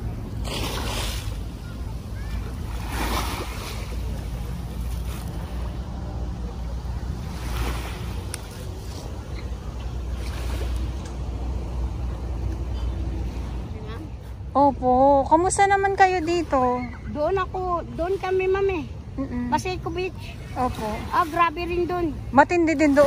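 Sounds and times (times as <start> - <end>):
small waves lapping: 0.0 - 23.0.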